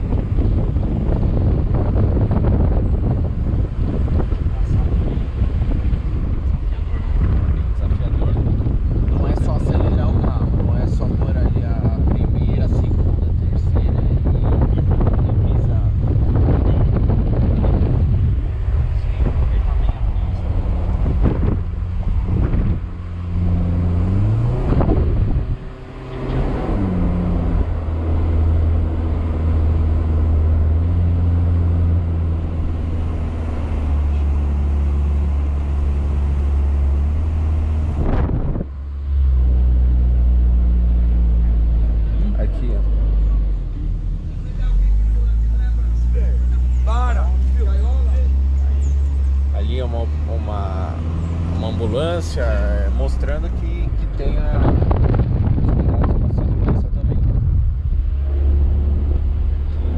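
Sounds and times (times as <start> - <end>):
car engine revving: 0.0 - 59.9
wind buffeting microphone: 0.0 - 59.9.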